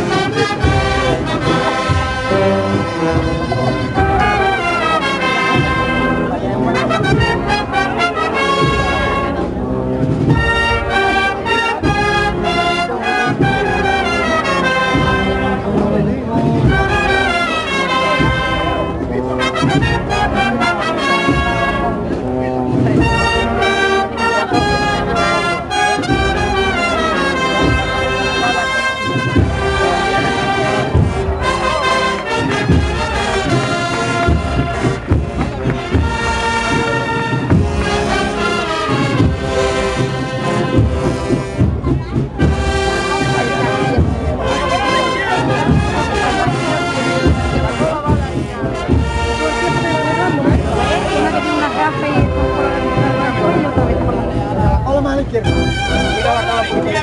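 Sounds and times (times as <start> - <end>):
brass band playing a march: 0.0 - 57.0
drum strikes: 0.0 - 57.0.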